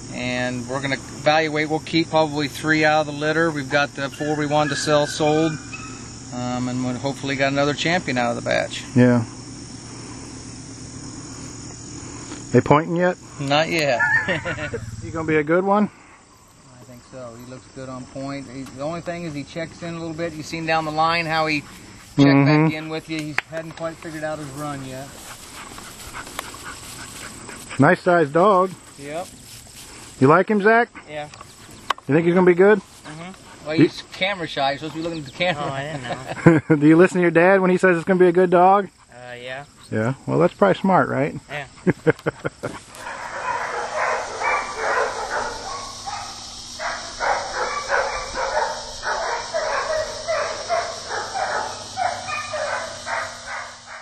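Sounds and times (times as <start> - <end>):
steady high hiss: 0.0 - 54.0
dog barking: 43.0 - 54.0.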